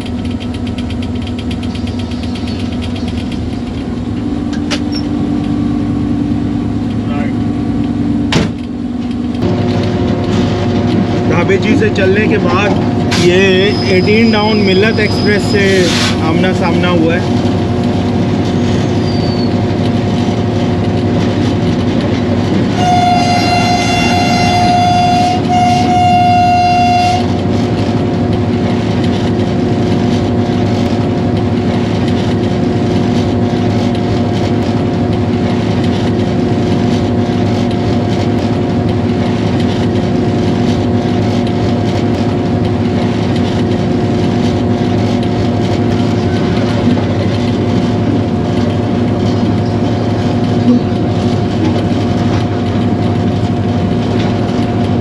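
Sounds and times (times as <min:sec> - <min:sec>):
locomotive engine drone: 0:00.0 - 0:55.0
train air horn blasts: 0:22.7 - 0:27.4.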